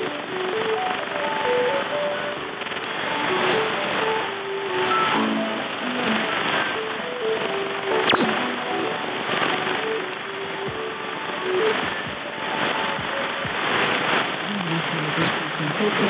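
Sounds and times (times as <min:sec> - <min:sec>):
faint radio programme audio: 0:00.0 - 0:16.0
radio band noise: 0:00.0 - 0:16.0
static crackles: 0:00.0 - 0:16.0.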